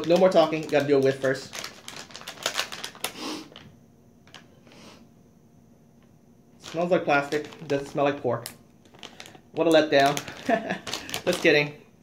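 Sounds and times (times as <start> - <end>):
plastic bag crinkling: 0.0 - 4.5, 6.6 - 11.8
person sniffing: 3.1 - 3.5.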